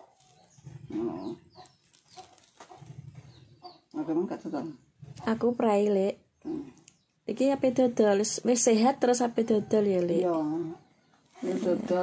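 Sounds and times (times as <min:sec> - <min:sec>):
chickens clucking: 0:00.0 - 0:05.4.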